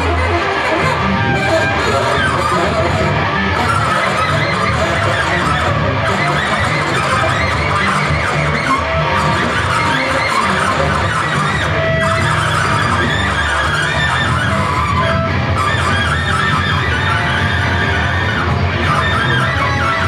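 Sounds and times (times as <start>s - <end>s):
alto saxophone: 0.0s - 20.0s
bass guitar: 0.0s - 20.0s
electric guitar: 0.0s - 20.0s.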